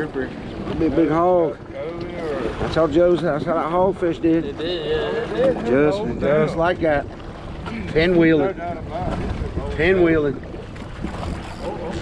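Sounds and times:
open sea: 0.0s - 12.0s
wind noise on microphone: 0.0s - 12.0s.

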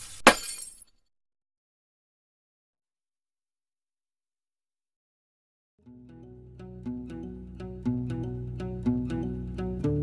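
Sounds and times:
glass shattering: 0.0s - 1.0s.

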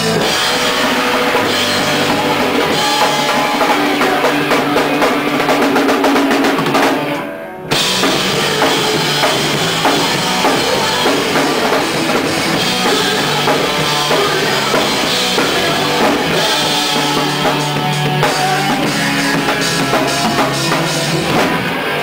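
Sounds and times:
drum kit: 0.0s - 22.0s
live rock band playing: 0.0s - 22.0s.

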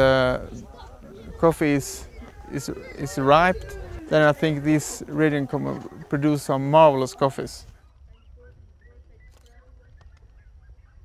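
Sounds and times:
birds chirping and whistling: 0.0s - 6.7s.

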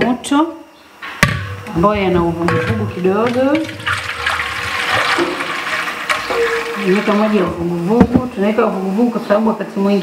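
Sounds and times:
water pouring into metal pot: 2.6s - 7.7s.

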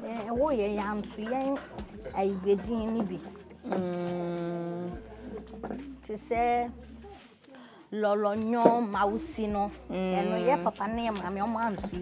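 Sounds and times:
woman humming: 3.6s - 5.5s, 9.9s - 10.8s
woman's wavering voiced sound: 3.7s - 5.0s.

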